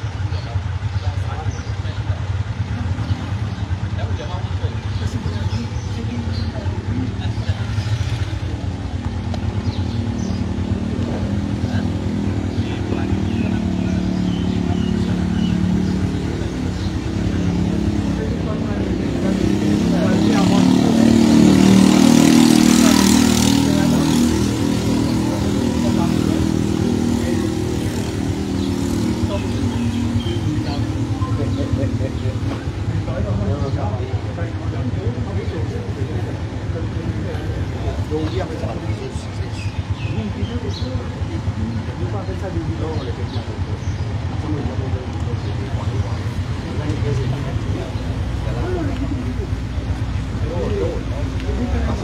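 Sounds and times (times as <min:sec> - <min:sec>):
people talking: 0:00.0 - 0:52.0
vehicle engine noise: 0:00.0 - 0:52.0.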